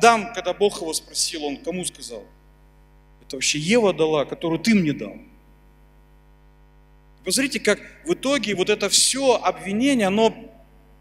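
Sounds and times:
man speaking: 0.0s - 2.3s, 3.3s - 5.3s, 7.3s - 10.6s
electrical mains hum: 0.0s - 11.0s.

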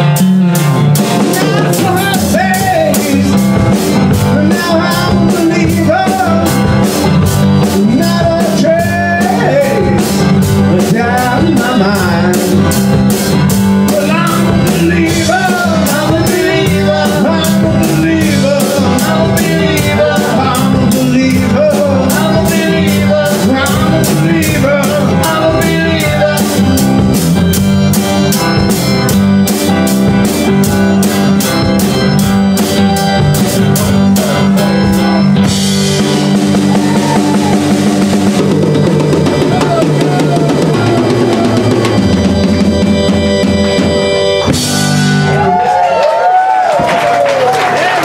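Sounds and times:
live rock band playing: 0.0s - 48.0s.

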